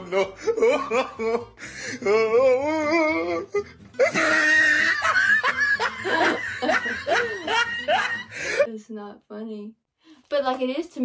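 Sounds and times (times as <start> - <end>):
woman laughing hard: 0.0 - 1.5, 4.0 - 8.6.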